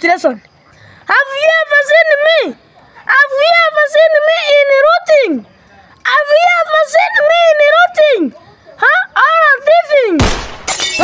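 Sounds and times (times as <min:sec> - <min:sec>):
excited voice: 0:06.0 - 0:10.2
glass shattering: 0:10.2 - 0:11.0.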